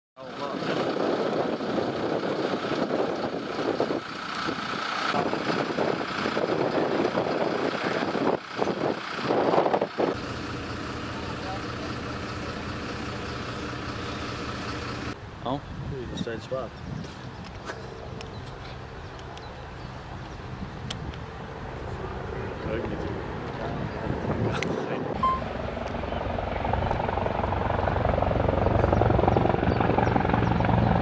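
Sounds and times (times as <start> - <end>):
diesel engine idling: 0.2 - 15.2
wind on microphone: 0.5 - 4.6, 15.6 - 17.7, 22.9 - 25.2.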